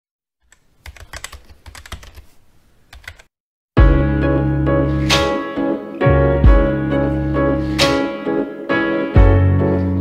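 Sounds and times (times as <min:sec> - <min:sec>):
keyboard typing clicks: 0:00.5 - 0:02.2, 0:02.9 - 0:03.3.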